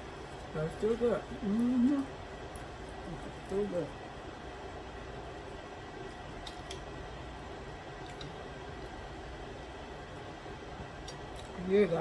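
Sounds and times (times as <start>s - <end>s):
soft chewing and mouth sounds: 0.0s - 8.9s, 9.9s - 11.6s
room noise: 0.0s - 12.0s.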